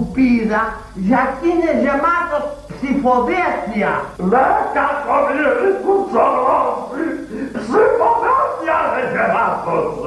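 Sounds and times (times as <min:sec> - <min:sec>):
person talking fast comically: 0:00.2 - 0:06.9, 0:07.6 - 0:10.0.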